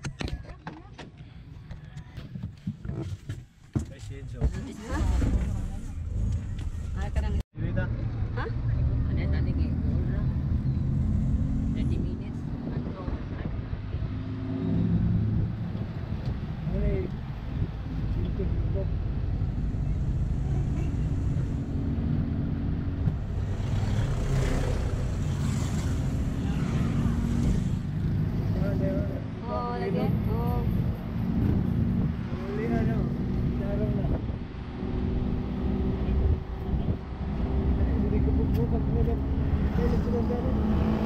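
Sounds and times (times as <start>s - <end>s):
road and wind noise: 0.0s - 41.0s.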